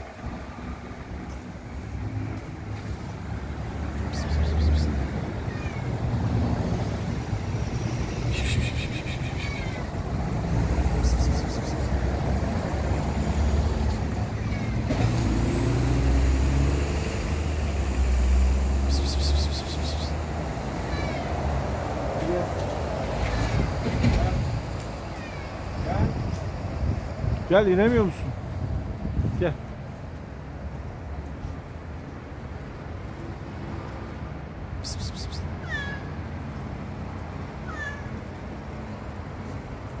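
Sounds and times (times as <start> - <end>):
cat meowing: 5.4 - 6.2, 8.8 - 10.0, 20.9 - 21.3.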